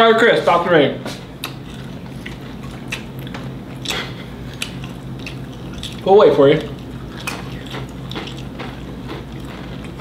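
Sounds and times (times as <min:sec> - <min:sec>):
chips crunching: 0:01.4 - 0:10.0.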